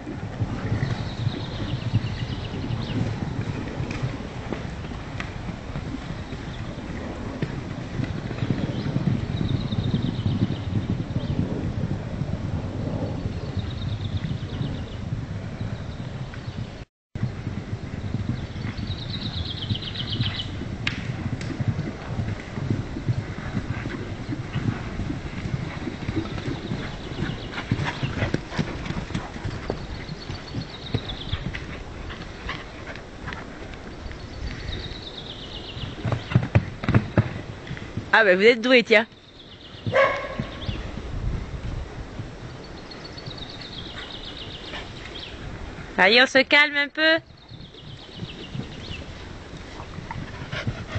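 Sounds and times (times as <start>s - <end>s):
horse hoofbeats on soft ground: 0.0s - 50.9s.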